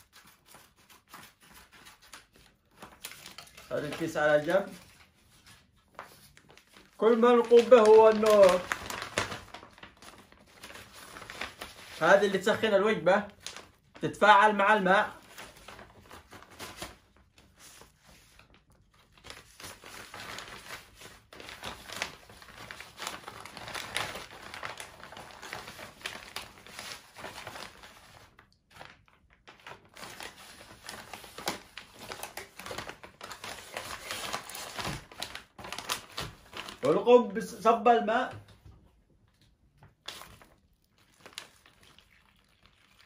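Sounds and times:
plastic packaging crinkling: 0.0s - 38.5s, 39.3s - 43.0s.

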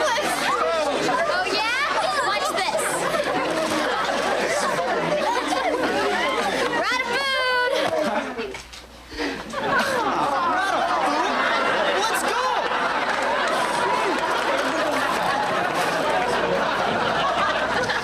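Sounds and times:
crowd talking and shouting: 0.0s - 18.0s.

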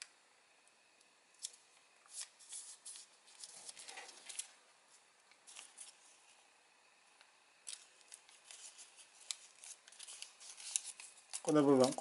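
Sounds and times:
paper crinkling and rustling: 1.4s - 6.4s, 7.6s - 12.0s.

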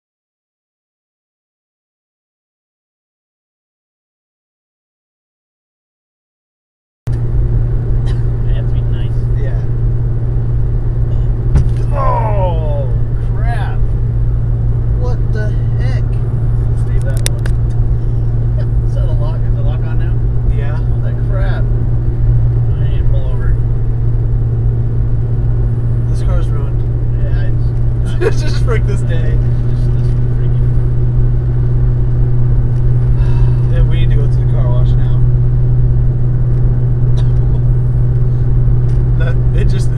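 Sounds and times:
car cruising interior drone: 7.1s - 39.9s.

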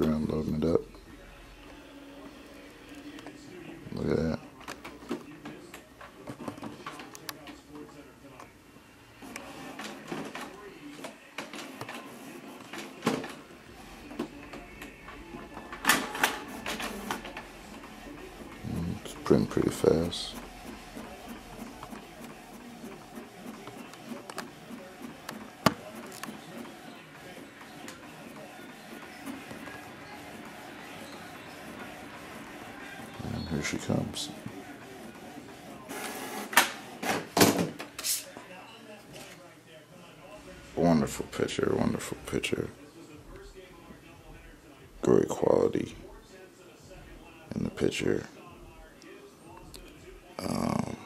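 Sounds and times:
printer clicking and clunking: 14.0s - 38.0s.

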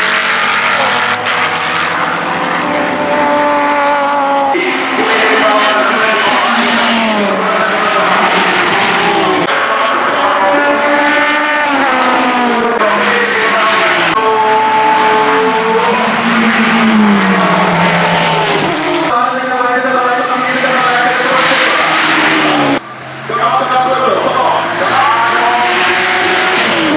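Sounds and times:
racing car engines passing: 0.0s - 26.9s.

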